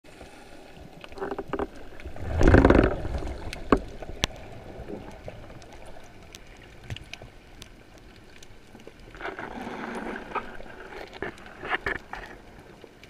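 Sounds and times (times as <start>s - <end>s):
underwater rushing swish: 0.1s - 12.8s.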